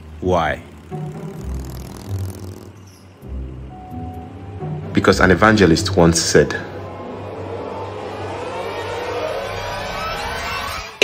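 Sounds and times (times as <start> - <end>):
housefly buzzing: 0.6 - 3.5.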